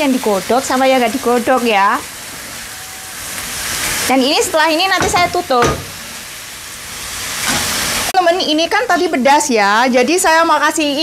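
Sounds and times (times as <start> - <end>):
greens sizzling in a wok: 0.0 - 11.0.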